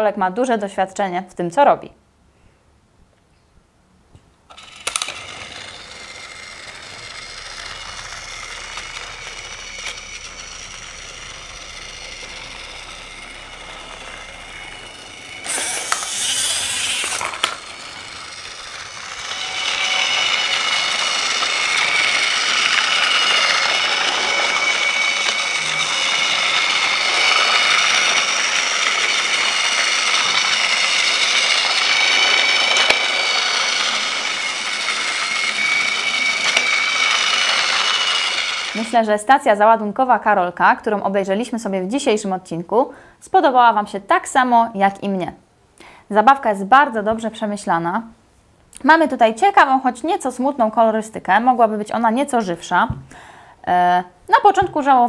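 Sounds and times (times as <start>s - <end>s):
toy train motor whining: 4.5s - 39.6s.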